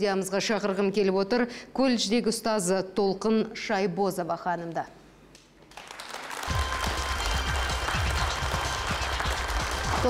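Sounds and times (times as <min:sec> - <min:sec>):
audience applauding: 0:05.7 - 0:10.0
music with pulsing bass beat: 0:06.5 - 0:10.0.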